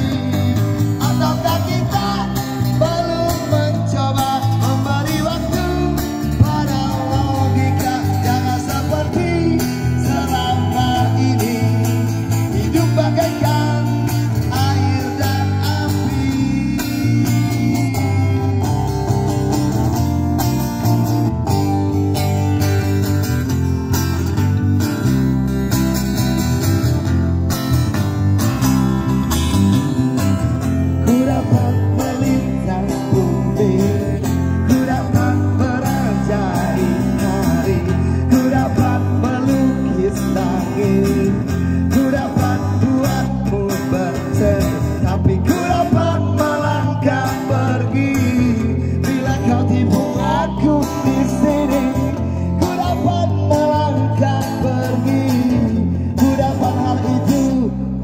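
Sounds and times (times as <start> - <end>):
man singing into microphone: 0.0 - 19.5, 30.9 - 58.0
acoustic and electric guitars: 0.0 - 58.0.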